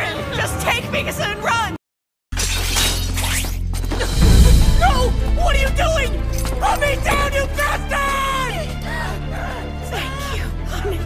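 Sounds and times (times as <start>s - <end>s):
shatter sound effect: 4.0s - 7.3s
low steady bass tone: 4.1s - 7.7s.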